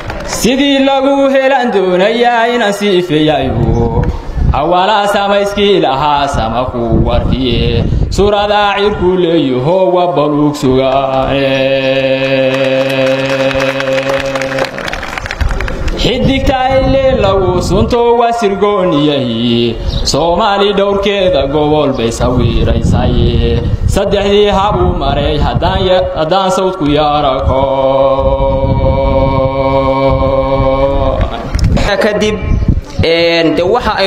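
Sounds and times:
low voice chanting: 0.3 - 15.3, 15.9 - 34.0
quick clapping: 12.3 - 16.0.

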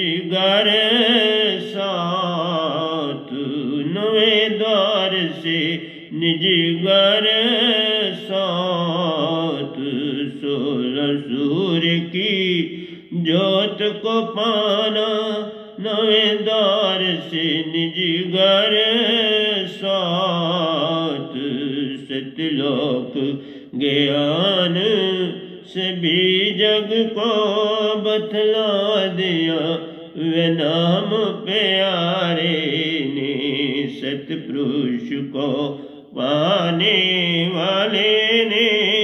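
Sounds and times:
man singing devotional song: 0.0 - 39.0.

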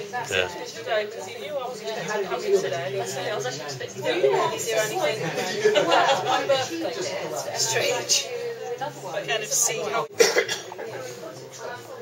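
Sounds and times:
low background chatter: 0.0 - 12.0
person coughing: 10.2 - 10.8.

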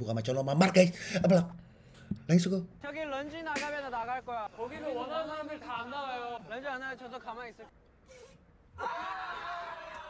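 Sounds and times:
lively speech: 2.3 - 7.7.

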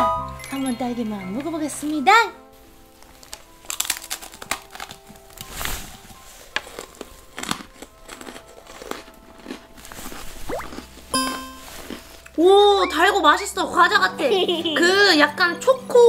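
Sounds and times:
quiet background music: 0.0 - 16.0
person crunching freeze-dried food: 2.9 - 12.4.

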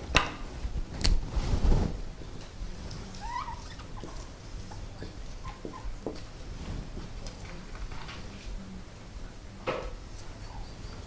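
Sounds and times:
marker squeaking on whiteboard: 3.2 - 6.0.

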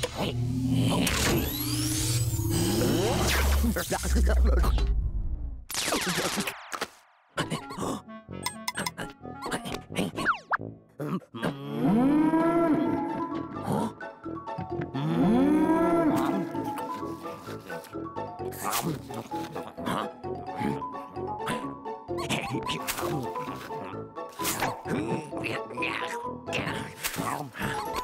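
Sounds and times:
background music: 7.4 - 11.0, 11.7 - 28.0
cartoon character vocal sounds: 8.7 - 10.4, 24.6 - 28.0.

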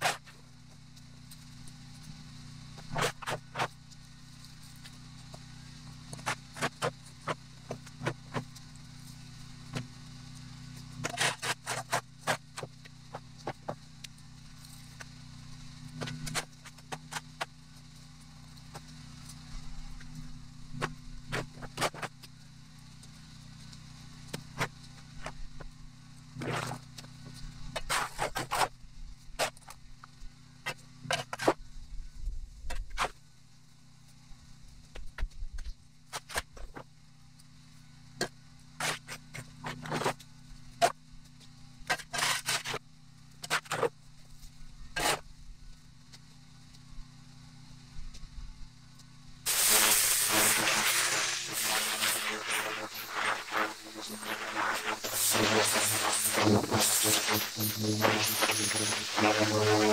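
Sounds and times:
tool scraping hard ground: 0.0 - 0.4, 2.8 - 3.8, 6.1 - 8.6, 11.0 - 13.8, 15.9 - 17.5, 20.8 - 22.2, 26.4 - 28.8, 29.4 - 29.8, 30.7 - 31.6, 32.7 - 33.2, 36.1 - 36.8, 38.2 - 40.2, 41.9 - 42.8, 43.4 - 44.0, 44.9 - 45.3, 49.5 - 59.9.

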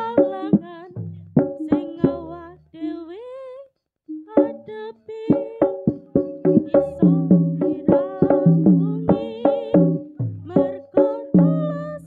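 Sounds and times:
drum strokes: 0.0 - 2.5, 4.1 - 12.0
struck pitched percussion: 0.0 - 2.7, 4.1 - 12.0.

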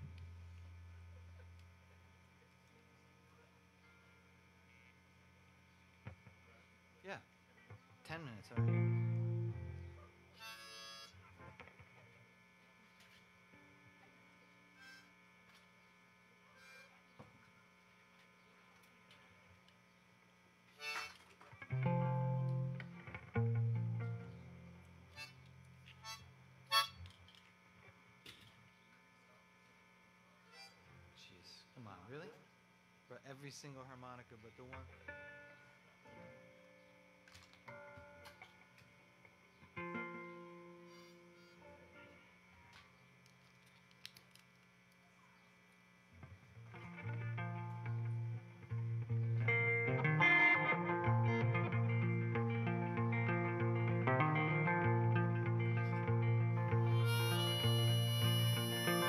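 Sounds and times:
amplified guitar rig hum: 0.0 - 44.0, 45.0 - 59.0.

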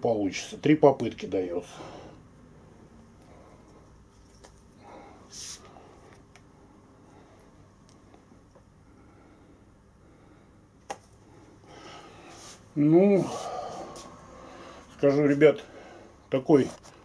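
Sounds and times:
hissing breath: 11.6 - 15.0.

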